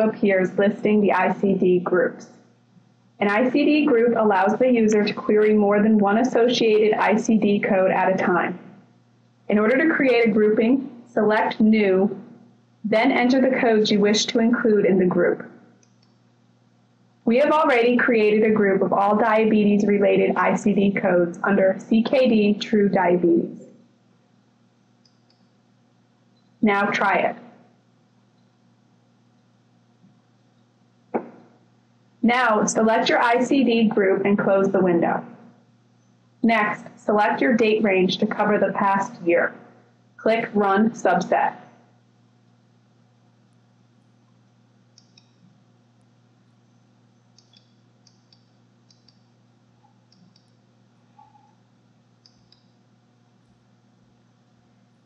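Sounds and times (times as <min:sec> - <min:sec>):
faint low hum: 0:00.0 - 0:55.0
computer mouse click: 0:15.8 - 0:16.2, 0:25.0 - 0:25.5, 0:44.9 - 0:45.5, 0:47.3 - 0:50.6, 0:51.2 - 0:51.6, 0:52.2 - 0:52.8.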